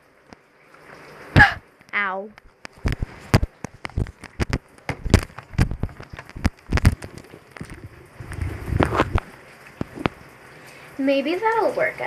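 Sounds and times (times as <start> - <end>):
headphones handling clicks and knocks: 2.6 - 7.8
low rubbing: 7.0 - 9.3.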